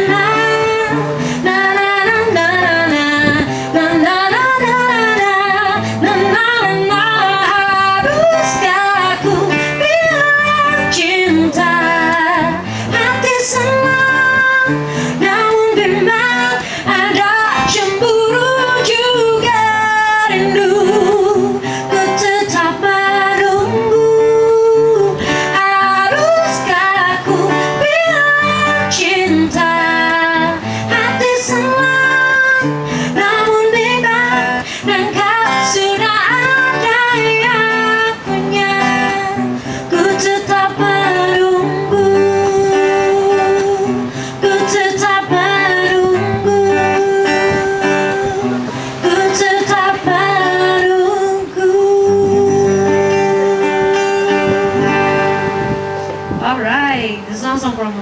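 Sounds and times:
acoustic guitar strummed and picked: 0.0s - 58.0s
woman singing: 0.0s - 58.0s.

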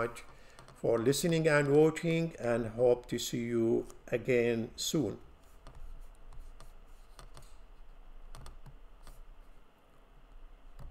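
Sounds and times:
low steady hum: 0.0s - 10.9s
keyboard and mouse clicks: 5.6s - 7.6s, 8.3s - 9.2s.

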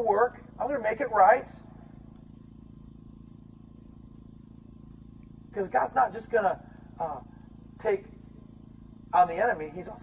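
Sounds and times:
low fluttering hum: 0.0s - 10.0s.

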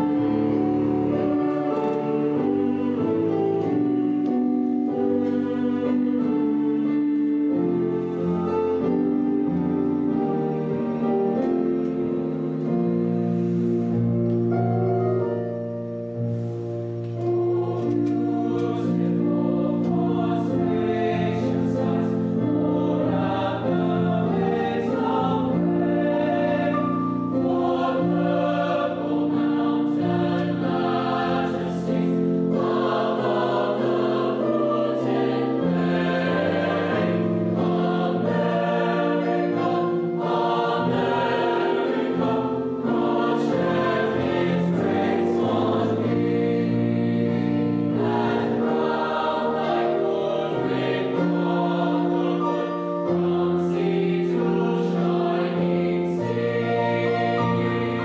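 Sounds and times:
choir singing in parts: 0.0s - 15.7s, 16.3s - 58.0s.

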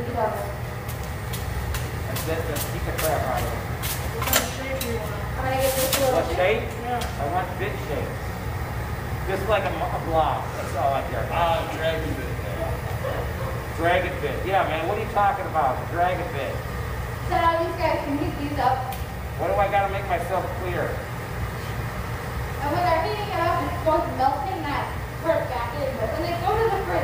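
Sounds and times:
furnace roar: 0.0s - 27.0s.

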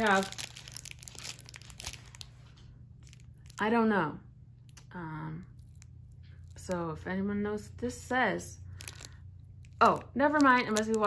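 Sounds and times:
plastic packaging crinkling: 0.0s - 3.8s, 8.6s - 11.0s.

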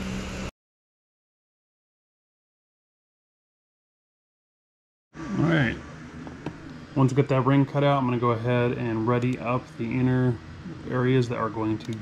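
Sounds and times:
person speaking: 7.0s - 12.0s.

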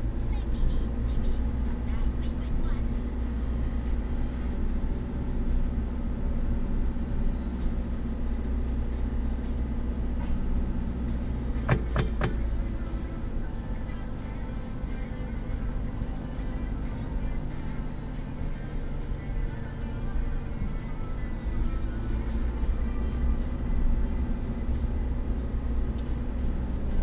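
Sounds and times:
car engine and road noise: 0.0s - 27.0s
sharp knocks: 11.7s - 12.4s.

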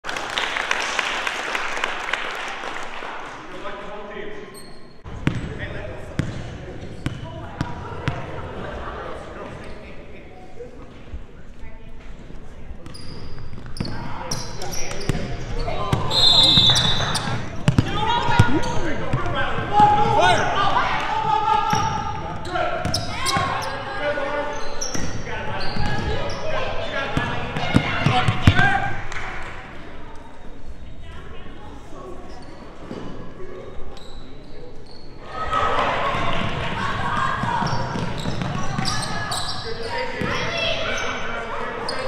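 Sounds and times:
voices echoing in gym: 0.8s - 42.0s
basketball bouncing on wooden floor: 17.7s - 18.5s.

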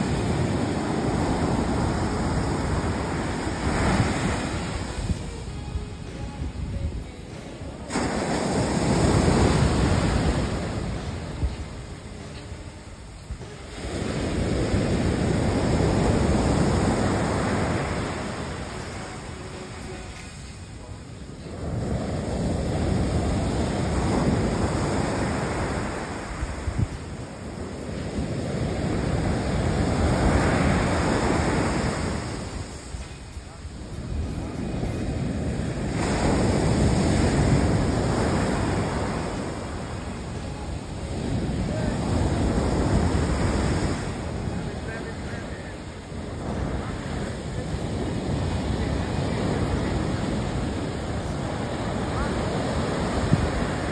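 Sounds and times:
waves breaking on beach: 0.0s - 53.9s.

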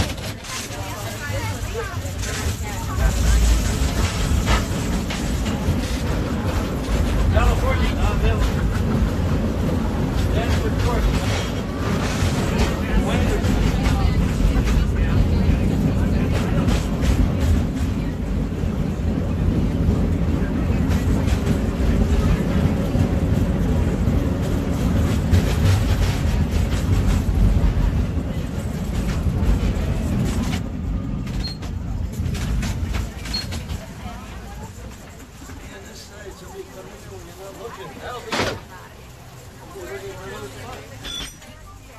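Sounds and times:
cable car rumbling: 0.0s - 41.9s
passengers chattering: 0.0s - 41.9s.

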